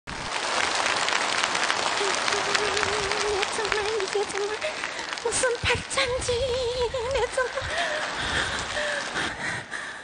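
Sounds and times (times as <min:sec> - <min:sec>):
audience applauding: 0:00.1 - 0:09.4.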